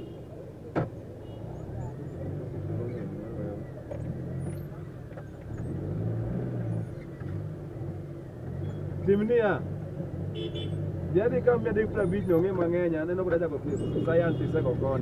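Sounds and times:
car engine and road noise: 0.0 - 15.0.

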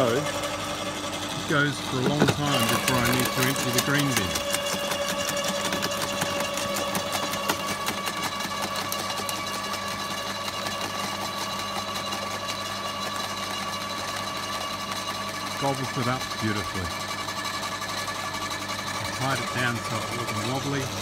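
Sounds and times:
garden shredder humming: 0.0 - 21.0.

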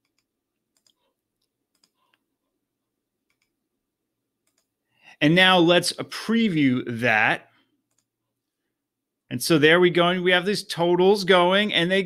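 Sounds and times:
faint computer mouse clicks: 3.3 - 3.6, 4.4 - 4.7.

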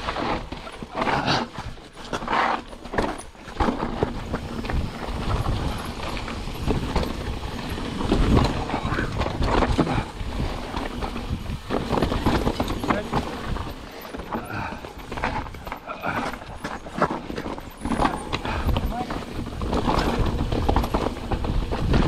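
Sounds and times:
bike knocking and rattling: 0.0 - 22.0
bike tyres crunching over stones: 0.0 - 22.0.

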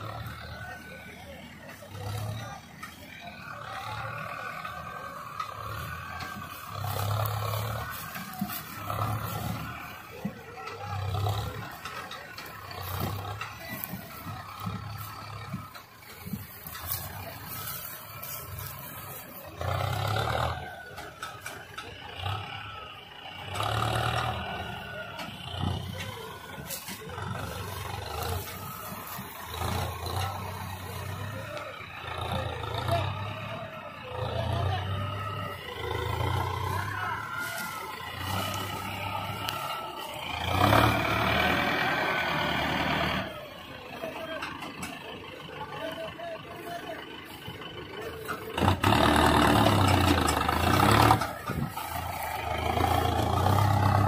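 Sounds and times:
tractor diesel engine under load: 0.0 - 54.0.

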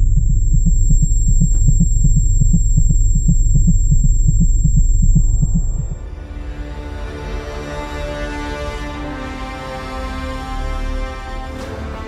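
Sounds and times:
high-pitched ringing tone: 0.0 - 6.1
pulsing bass rumble: 0.0 - 6.7
music: 5.4 - 12.0.

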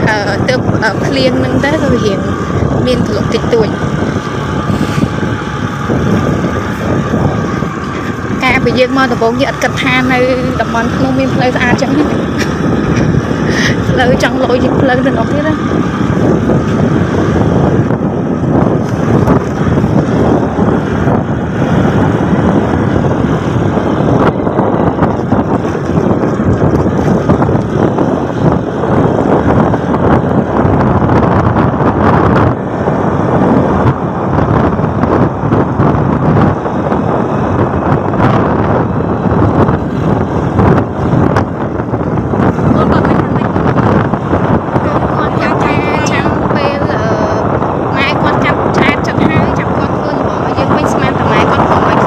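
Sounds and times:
motorbike engine: 0.0 - 52.0
wind buffeting microphone: 0.0 - 52.0.

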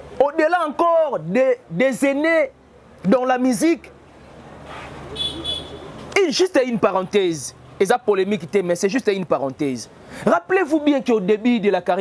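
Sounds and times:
background noise: 0.0 - 12.0.

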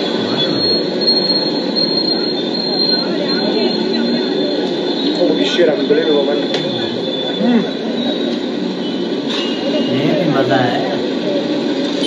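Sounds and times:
indistinct voices: 0.0 - 8.9, 9.6 - 12.0
street noise: 0.0 - 12.0.

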